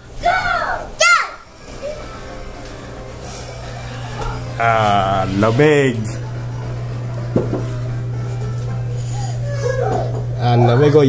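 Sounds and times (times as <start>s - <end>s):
child calling out: 0.2s - 2.1s
steady low hum: 1.5s - 11.0s.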